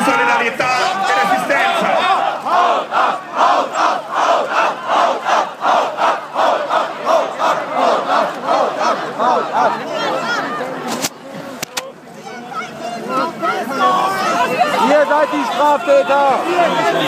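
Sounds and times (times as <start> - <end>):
crowd chanting in unison: 0.0 - 10.8.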